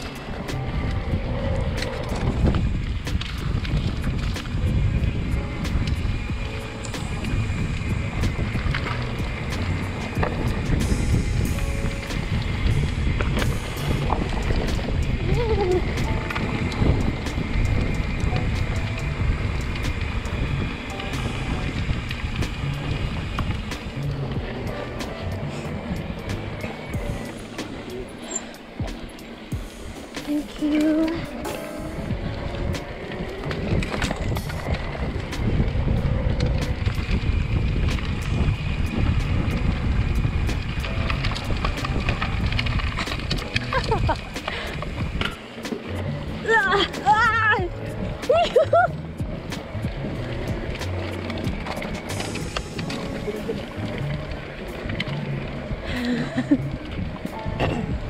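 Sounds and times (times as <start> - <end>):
background music: 0.0 - 58.0
bike rattling: 0.0 - 58.0
bike tyres rolling on dirt trail: 0.0 - 58.0.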